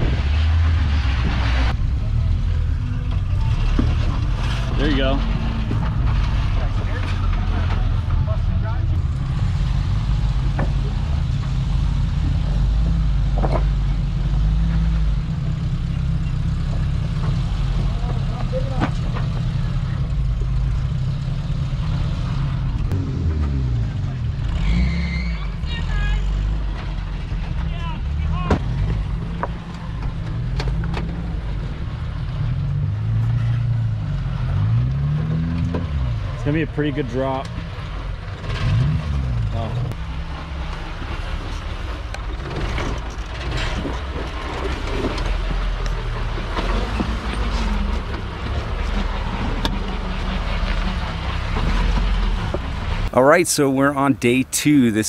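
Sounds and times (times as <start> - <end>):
engine running at low revs: 0.0 - 25.1.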